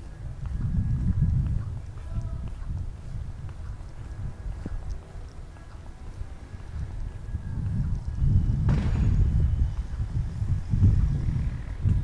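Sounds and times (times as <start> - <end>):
wind buffeting microphone: 0.0 - 12.0.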